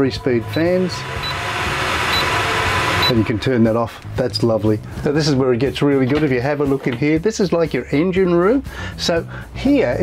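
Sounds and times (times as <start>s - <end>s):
exhaust fan rushing air: 0.0s - 5.3s.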